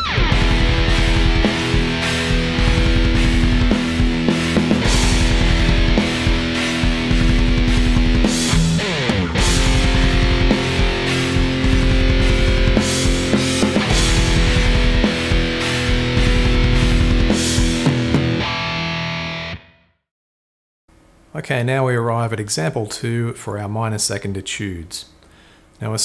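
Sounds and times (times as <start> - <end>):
distorted electric guitar riff: 0.0 - 19.9.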